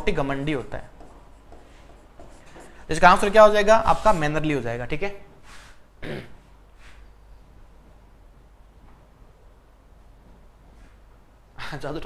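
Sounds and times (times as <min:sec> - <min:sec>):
stylus scratching on tablet: 0:00.4 - 0:04.3.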